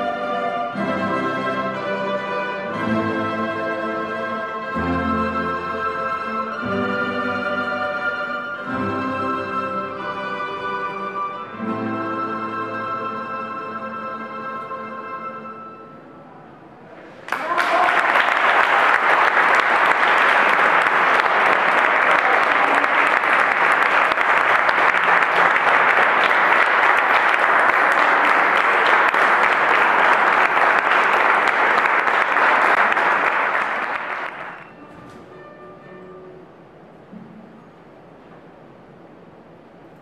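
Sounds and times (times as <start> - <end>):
audience applauding: 17.1 - 34.8.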